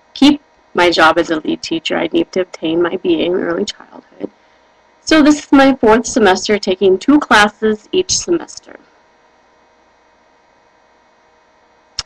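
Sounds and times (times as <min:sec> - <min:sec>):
faint electrical hum with hiss: 0:00.0 - 0:12.0.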